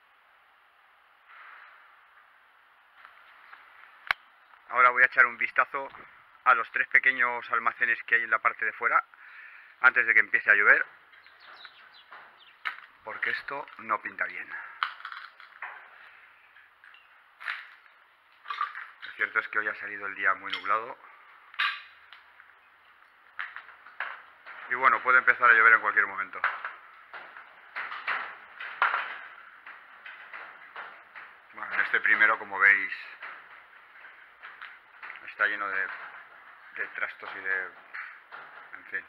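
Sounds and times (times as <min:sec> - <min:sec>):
faint bird chirping: 0:11.0 - 0:13.2.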